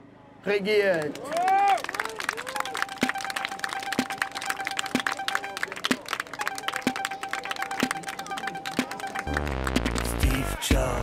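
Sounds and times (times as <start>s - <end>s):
small crowd clapping: 0.8s - 10.6s
music with steady beat: 2.9s - 11.0s.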